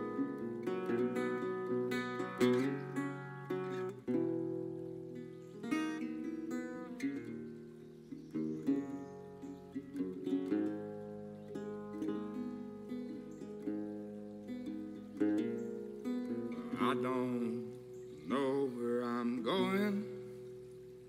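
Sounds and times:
resonator guitar plucked notes: 0.0 - 21.0.

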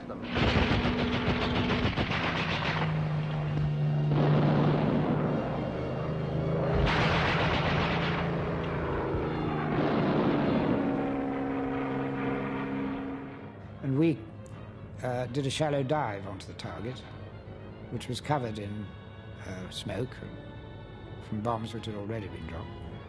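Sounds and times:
piston aircraft engines droning: 0.0 - 23.0
rapid gunfire bursts: 0.3 - 3.1.

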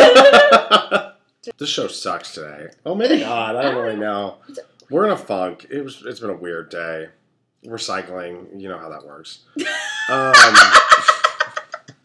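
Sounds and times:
woman laughing loudly: 0.0 - 1.0, 9.6 - 11.9.

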